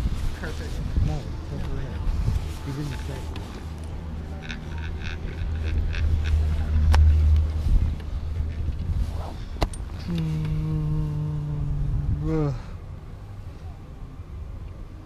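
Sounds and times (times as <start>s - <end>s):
low-pitched hum bending in pitch: 0.8s - 12.8s.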